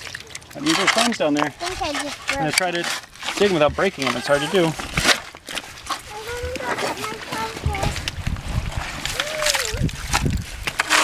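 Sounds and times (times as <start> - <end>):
wet squelching and sloshing: 0.0 - 11.0
shovel digging into wet mud: 0.6 - 7.1, 8.6 - 11.0
people talking: 3.4 - 4.8, 6.1 - 8.0, 9.2 - 9.8.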